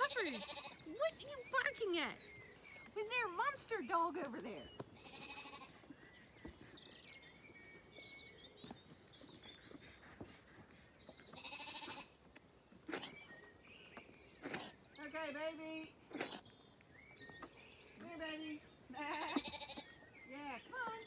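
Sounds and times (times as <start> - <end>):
lambs bleating: 0.0 - 0.9, 5.0 - 5.8, 11.3 - 12.2, 18.9 - 19.9.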